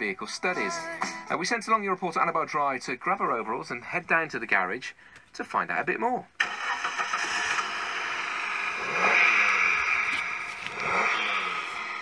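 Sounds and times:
car engine running: 6.4 - 12.0.

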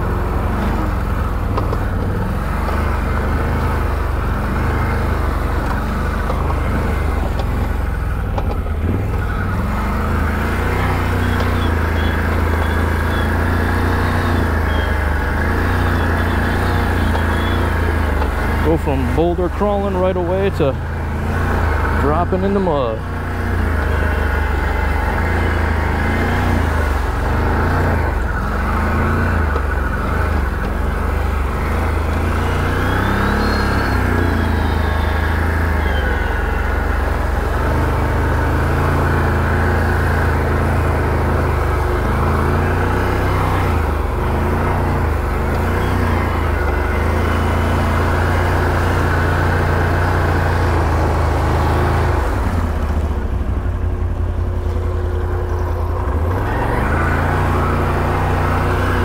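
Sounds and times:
atv engine revving: 0.0 - 59.0
splashing through mud puddles: 8.5 - 59.0.

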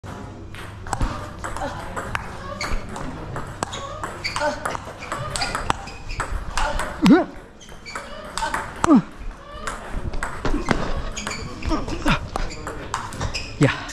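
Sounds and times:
ping pong ball clicking: 0.6 - 7.0
players grunting: 8.2 - 12.6.

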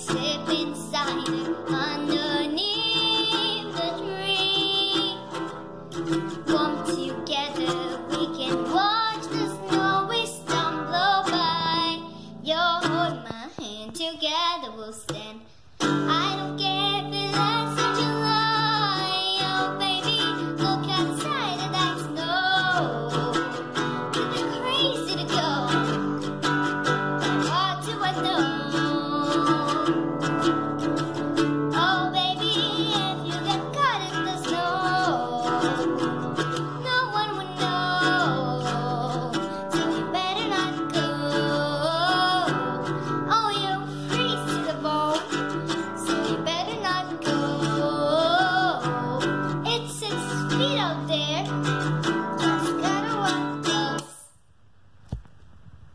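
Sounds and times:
classical guitar strumming chords: 0.0 - 13.9, 15.8 - 54.2
girl singing: 0.0 - 54.5.

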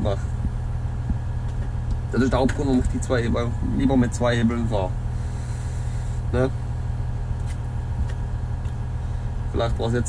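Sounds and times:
diesel engine humming: 0.0 - 10.0.

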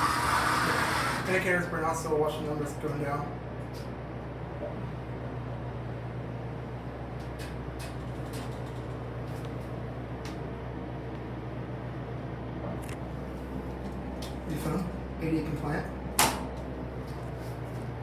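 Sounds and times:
elevator hum and rumble: 0.0 - 18.0.

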